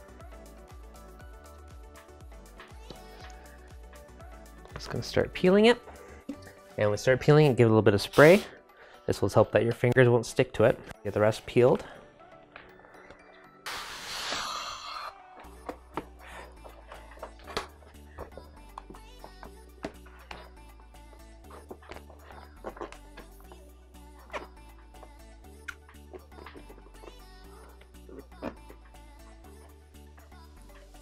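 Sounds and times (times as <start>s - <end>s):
spray bottle hissing: 8.1s - 8.5s, 13.7s - 15.1s.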